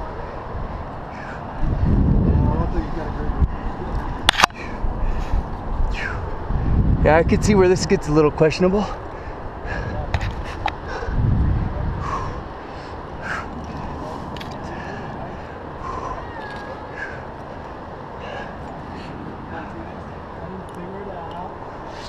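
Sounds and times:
wind noise on microphone: 0.0s - 8.4s, 9.1s - 17.6s.

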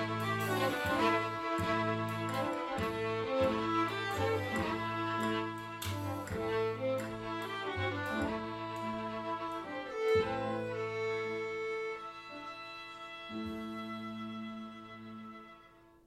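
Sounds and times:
violins playing: 0.0s - 16.0s.

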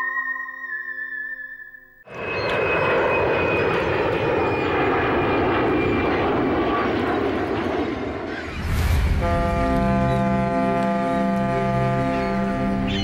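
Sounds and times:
aircraft engine drone: 2.1s - 13.0s.

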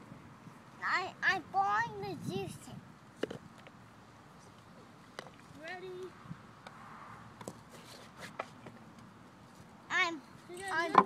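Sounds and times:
faint outdoor background hiss: 0.0s - 11.0s
child saying a word: 9.9s - 11.0s.

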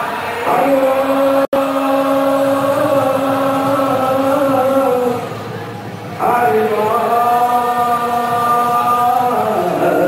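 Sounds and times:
person chanting: 0.0s - 5.4s, 6.2s - 10.0s.

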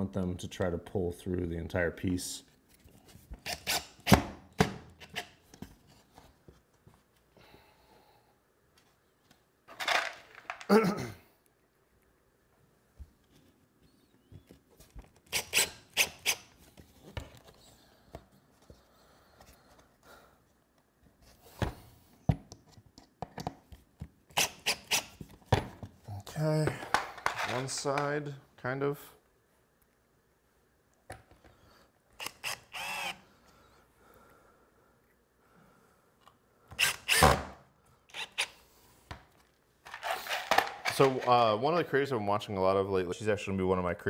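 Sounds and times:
man talking: 0.0s - 2.5s, 26.1s - 29.2s, 40.9s - 44.0s.

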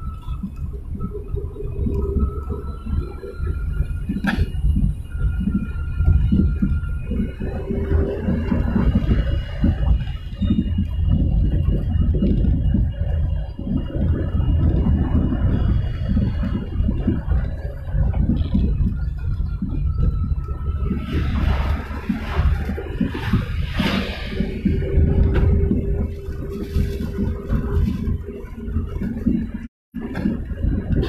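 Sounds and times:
car engine and road rumble: 0.0s - 31.0s.

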